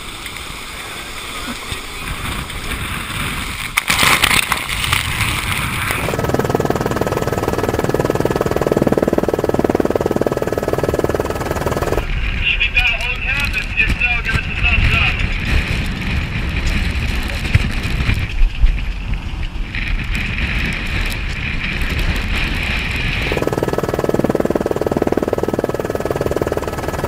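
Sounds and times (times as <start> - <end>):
rough water rushing: 0.0 - 18.2
storm wind on microphone: 1.9 - 25.8.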